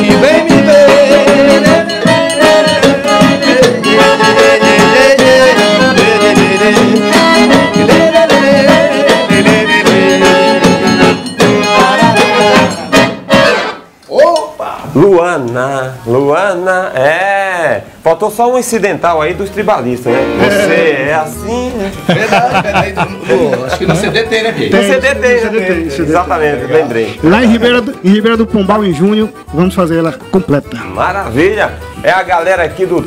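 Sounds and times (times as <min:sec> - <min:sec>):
accordion melody: 0:00.0 - 0:14.0, 0:19.1 - 0:33.0
acoustic guitar: 0:00.0 - 0:14.0, 0:19.2 - 0:33.0
man talking: 0:14.0 - 0:33.0.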